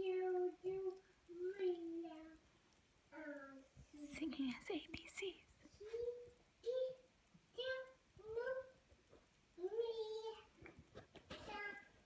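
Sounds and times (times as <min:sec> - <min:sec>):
child singing held notes: 0:05.7 - 0:08.8, 0:09.6 - 0:10.6, 0:11.3 - 0:12.0.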